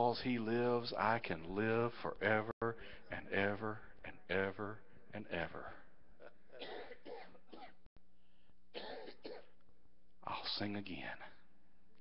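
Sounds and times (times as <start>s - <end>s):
man clearing his throat: 6.2s - 7.8s, 8.8s - 9.6s.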